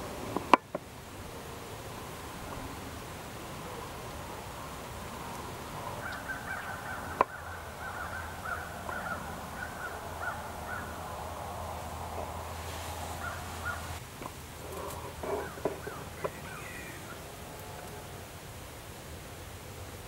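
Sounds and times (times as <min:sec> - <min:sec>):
birds calling: 0:03.6 - 0:18.2.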